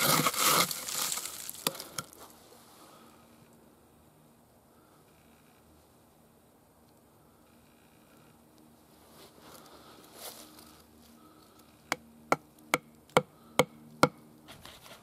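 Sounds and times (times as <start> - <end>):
handling rustle: 0.0 - 2.6.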